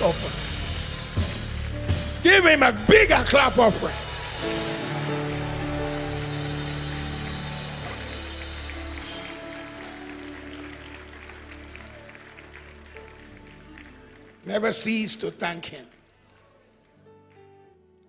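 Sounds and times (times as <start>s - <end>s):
congregation clapping: 0.0s - 17.5s.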